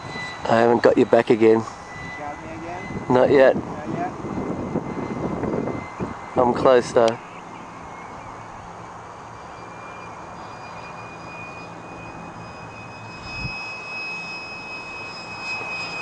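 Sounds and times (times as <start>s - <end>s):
model jet whine: 0.0s - 16.0s.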